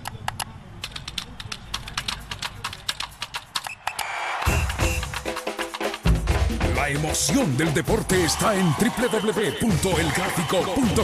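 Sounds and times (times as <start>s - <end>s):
fast keyboard typing: 0.0s - 6.0s.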